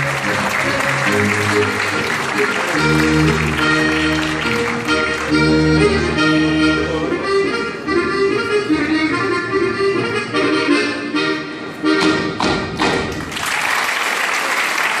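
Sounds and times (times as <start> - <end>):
audience applause: 0.0 - 5.6, 13.1 - 15.0
accordion dance tune: 0.0 - 13.2.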